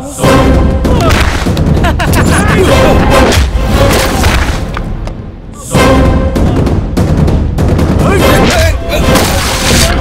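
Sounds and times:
action background score: 0.0s - 10.0s.

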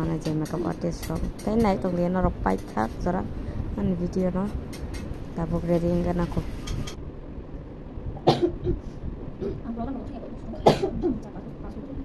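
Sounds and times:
person coughing: 8.2s - 9.6s, 10.6s - 11.2s.

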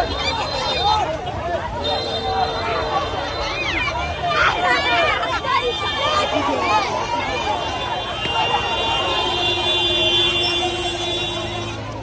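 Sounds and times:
crowd chattering: 0.0s - 12.0s
vehicle horn long note: 7.7s - 11.8s.

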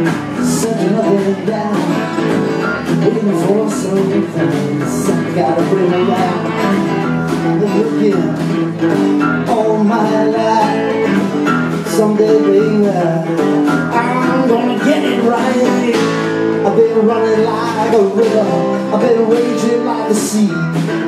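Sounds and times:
acoustic guitar strumming: 0.0s - 21.0s
electric guitar: 0.0s - 21.0s.

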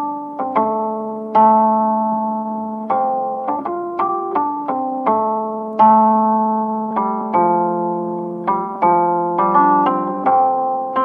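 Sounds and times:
slow sad instrumental music: 0.0s - 11.0s.

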